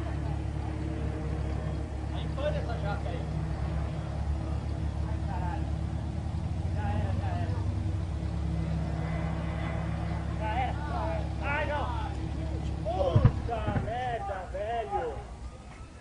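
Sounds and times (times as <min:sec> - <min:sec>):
low engine drone: 0:00.0 - 0:16.0
people calling out excitedly: 0:09.8 - 0:16.0.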